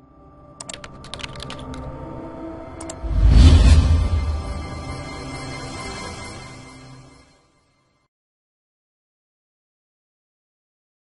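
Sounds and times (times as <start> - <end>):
faint musical drone: 0.0 - 7.4
computer keyboard typing: 0.6 - 2.0.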